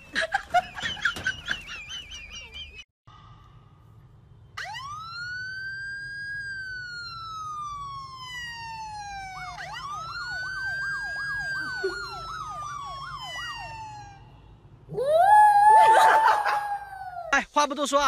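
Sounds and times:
electronic siren wailing and yelping: 4.6s - 14.3s, 14.9s - 17.4s
high wavering cry: 14.9s - 17.4s.

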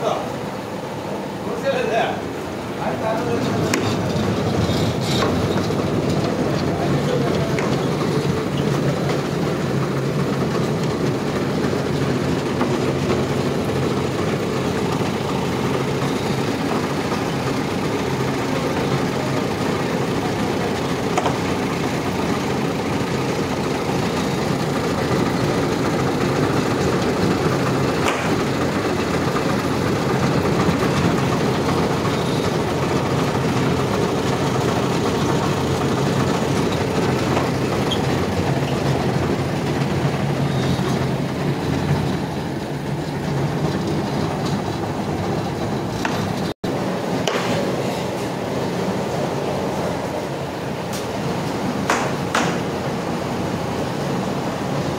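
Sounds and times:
winch gear machine noise: 0.0s - 54.9s.

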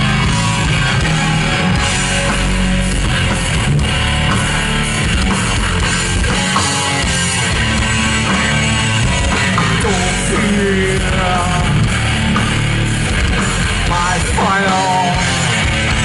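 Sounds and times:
bass and drums: 0.0s - 16.0s
electric guitars: 0.0s - 16.0s.

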